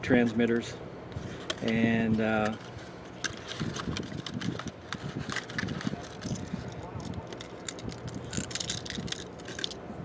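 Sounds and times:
key fobs rattling and clicking: 1.4 - 9.8.

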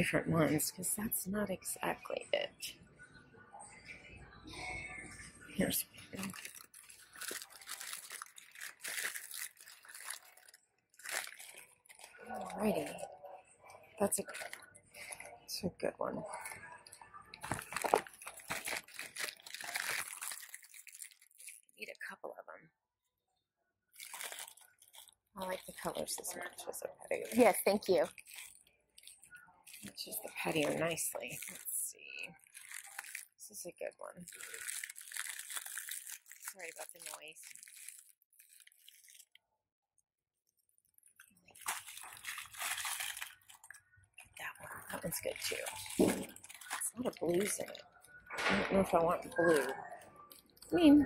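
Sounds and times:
plastic bag crinkling: 5.7 - 13.1, 14.0 - 15.4, 16.3 - 21.8, 24.0 - 39.4, 40.6 - 50.9.

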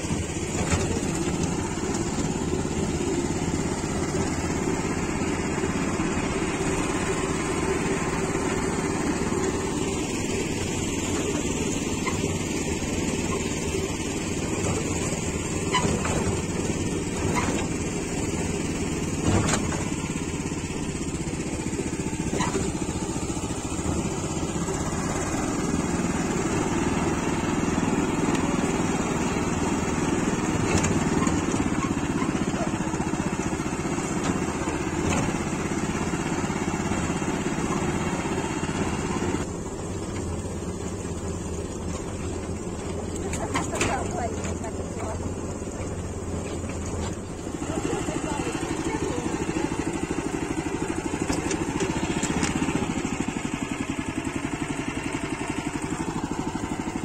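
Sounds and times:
knocks and rattles over bumps: 0.0 - 57.0
tractor engine running: 0.0 - 57.0.

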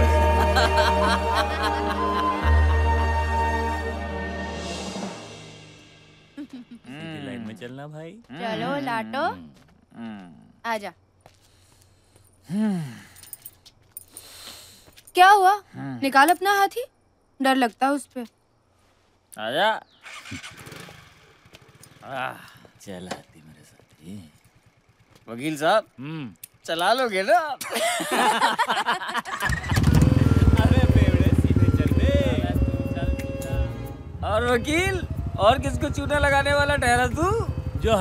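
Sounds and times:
key ring jingling: 13.1 - 14.3
soft rustle: 18.6 - 19.3
motorcycle engine pulling away: 20.0 - 26.7, 29.4 - 38.0.

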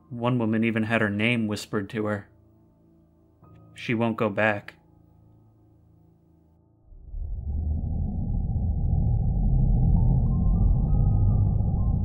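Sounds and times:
deep steady rumble: 6.9 - 12.0.

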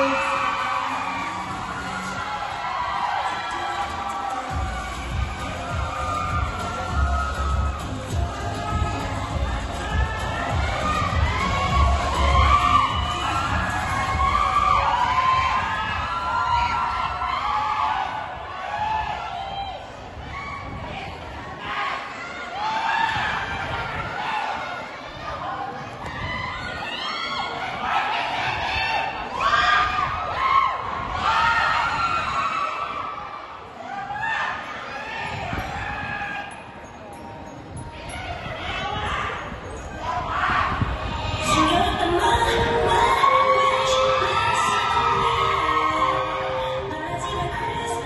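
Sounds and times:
high whoops: 0.0 - 21.0, 38.1 - 48.0
audience cheering and screaming: 0.0 - 24.8, 40.1 - 48.0
music with low beat: 4.5 - 14.5.

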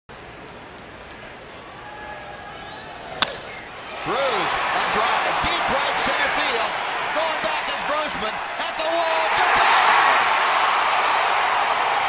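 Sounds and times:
crowd noise: 0.5 - 12.0
wooden bat striking baseball: 3.1 - 3.7.

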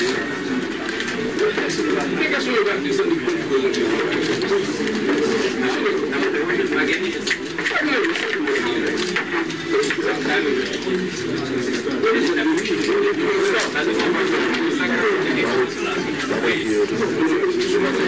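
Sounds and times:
chatter of many voices: 0.0 - 18.0.

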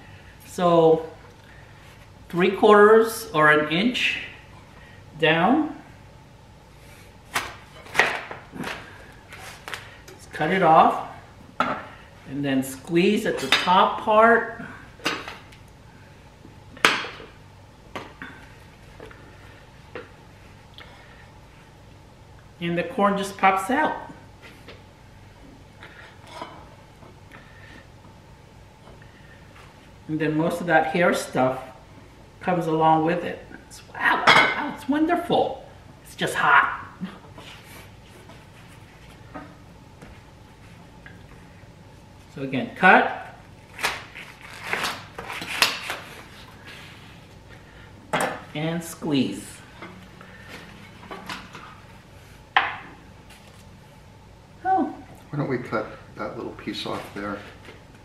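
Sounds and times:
low steady hum: 0.0 - 58.0.

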